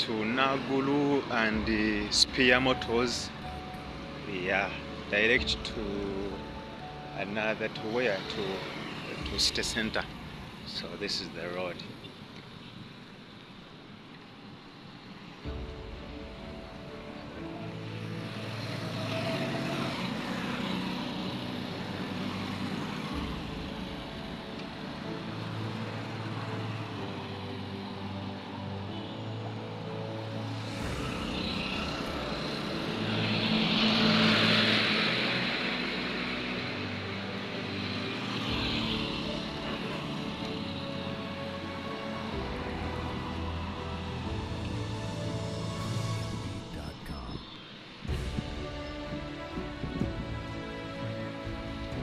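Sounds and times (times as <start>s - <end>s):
background music of held notes: 0.0s - 11.8s, 15.4s - 47.4s, 48.0s - 52.0s
motorcycles and cars passing: 0.0s - 46.8s.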